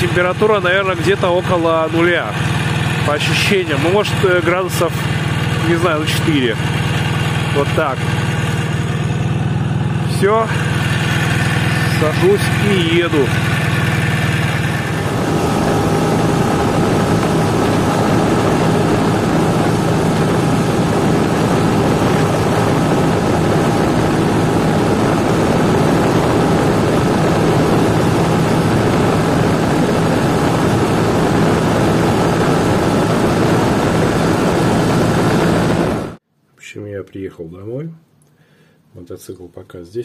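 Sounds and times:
motorcycle engine drone: 0.0s - 36.2s
wind rushing over microphone: 10.0s - 36.2s.

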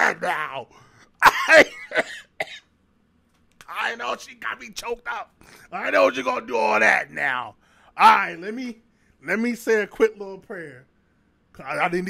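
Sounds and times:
man coughing: 1.2s - 2.7s.

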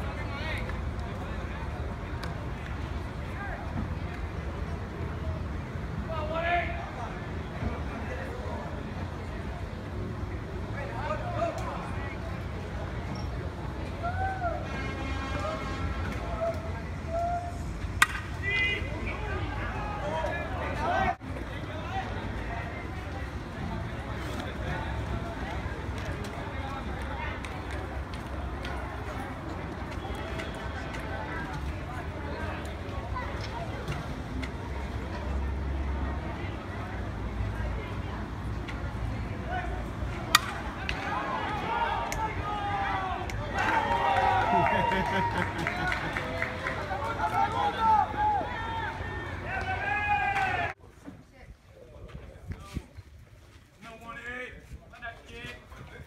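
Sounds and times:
players and spectators shouting: 14.0s - 22.7s, 39.4s - 50.8s
bat cracking a baseball: 18.0s - 18.4s, 40.3s - 41.1s.

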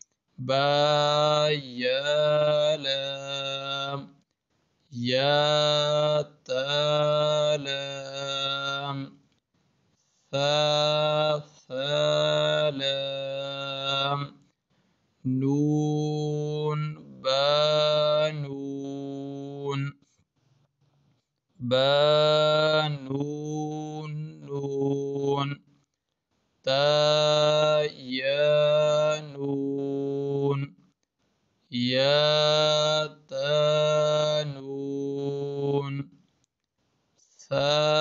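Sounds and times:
man chanting held tones: 0.0s - 4.2s, 5.0s - 9.2s, 10.4s - 14.4s, 15.3s - 20.0s, 21.6s - 25.6s, 26.7s - 30.8s, 31.7s - 36.1s, 37.3s - 38.0s.

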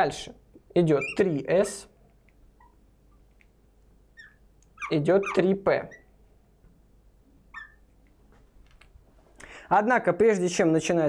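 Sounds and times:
marker squeak: 0.9s - 1.4s, 2.6s - 2.8s, 4.1s - 6.2s, 7.5s - 8.0s
marker drawing on glass: 1.0s - 1.3s, 4.2s - 6.0s, 7.5s - 7.8s.

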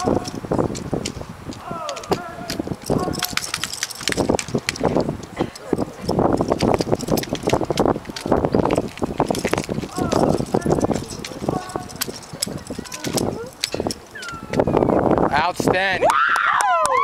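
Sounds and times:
rifles slapping and clacking: 0.0s - 14.8s.

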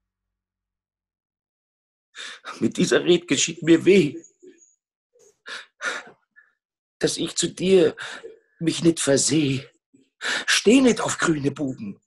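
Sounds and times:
man gasping breaths: 5.5s - 6.5s.

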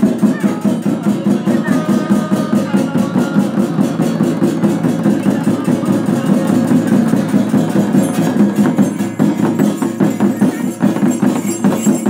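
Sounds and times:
crowd voices: 0.0s - 12.0s
frame drums beating: 0.0s - 12.0s
jingling bells: 0.0s - 12.0s.

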